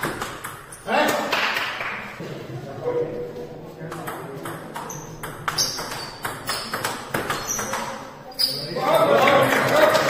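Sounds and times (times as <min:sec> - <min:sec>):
table tennis ball clicking: 0:04.0 - 0:08.0.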